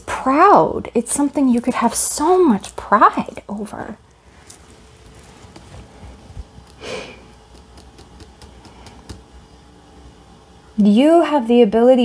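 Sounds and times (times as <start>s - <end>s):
tarot cards ticking and rustling: 4.4s - 9.3s.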